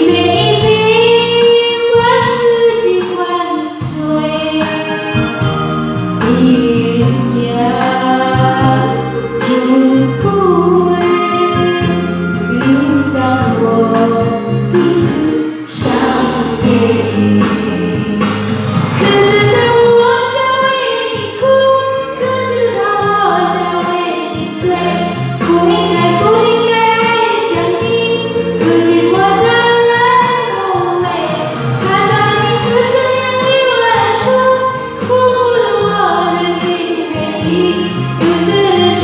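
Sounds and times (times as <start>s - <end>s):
amplified backing track: 0.0s - 39.0s
woman singing into microphone: 0.0s - 39.0s.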